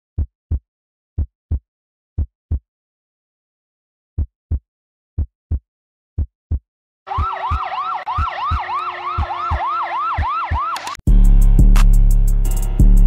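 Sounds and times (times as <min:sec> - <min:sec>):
heartbeat thumps: 0:06.2 - 0:10.8
yelping siren: 0:07.1 - 0:11.0.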